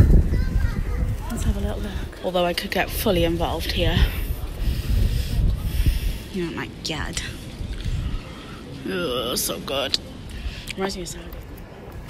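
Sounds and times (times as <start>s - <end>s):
microphone handling rumble: 0.0s - 2.2s, 3.3s - 8.3s.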